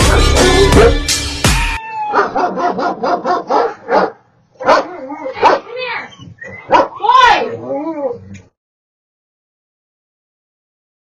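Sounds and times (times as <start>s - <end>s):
dogs barking: 0.0s - 1.0s, 2.1s - 7.6s.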